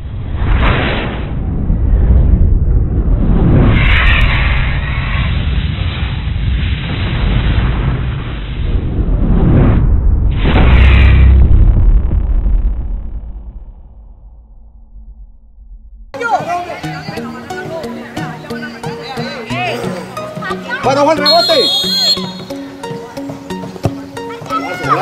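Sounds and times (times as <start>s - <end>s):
continuous low rumble: 0.0s - 16.2s
deep booms: 0.0s - 16.2s
whooshes: 0.0s - 16.2s.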